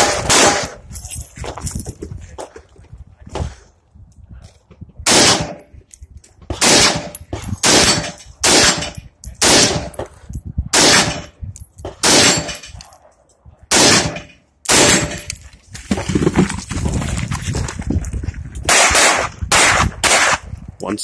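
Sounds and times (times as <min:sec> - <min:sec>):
rifle shots with echo: 0:00.0 - 0:00.8, 0:05.1 - 0:05.6, 0:06.6 - 0:10.0, 0:10.7 - 0:11.3, 0:12.0 - 0:12.7, 0:13.7 - 0:15.3, 0:18.7 - 0:20.4.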